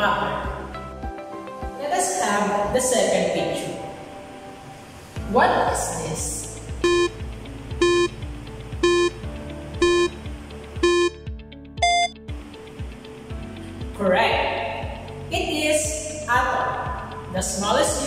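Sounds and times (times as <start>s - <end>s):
background music with steady beat: 0.0s - 18.0s
countdown timer beeps: 6.7s - 12.2s.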